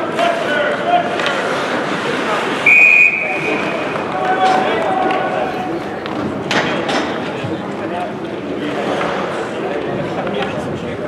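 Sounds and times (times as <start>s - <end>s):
voices echoing in arena: 0.0s - 11.0s
skates and sticks on ice: 3.4s - 10.6s.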